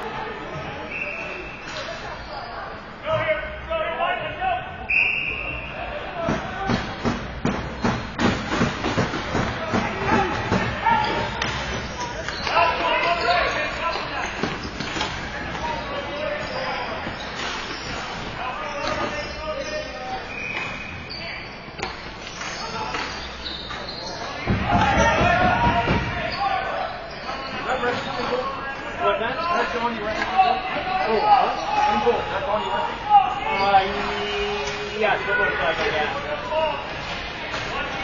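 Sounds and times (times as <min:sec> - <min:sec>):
hockey sticks clacking: 0:06.3 - 0:15.7
players shouting: 0:09.0 - 0:17.2, 0:24.3 - 0:38.0.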